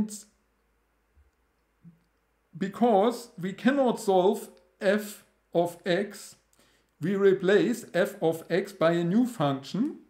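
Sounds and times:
man's voice: 2.6 - 6.4, 7.0 - 10.0.

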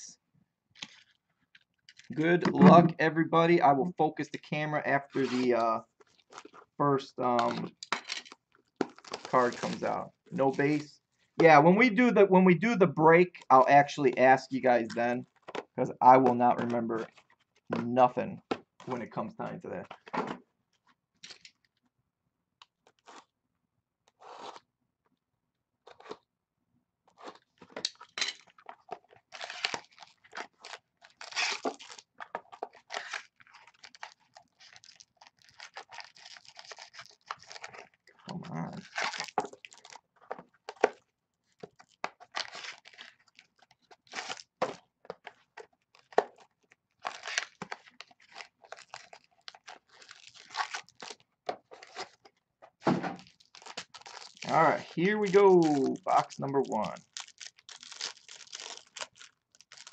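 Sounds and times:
cardboard and foil tearing: 5.1 - 6.6, 7.4 - 10.8, 28.0 - 38.1, 38.7 - 40.0, 40.8 - 52.3, 53.2 - 59.9.

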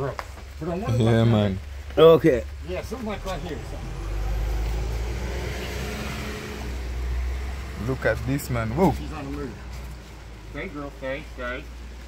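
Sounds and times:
vehicle engine running: 0.9 - 11.3.

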